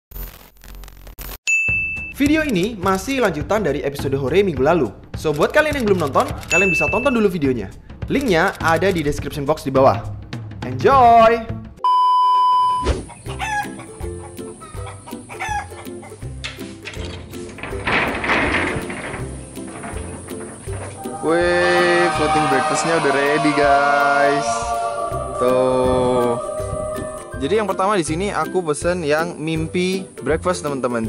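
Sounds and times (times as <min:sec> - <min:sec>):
crackling tv static: 0:00.1 - 0:01.4
bright single-note ding: 0:01.5 - 0:02.2, 0:06.5 - 0:07.2
high test-tone beep: 0:01.5 - 0:02.2, 0:06.5 - 0:07.2, 0:11.8 - 0:12.8
background music: 0:02.2 - 0:11.8, 0:13.0 - 0:31.0
rooster crowing: 0:20.9 - 0:28.1.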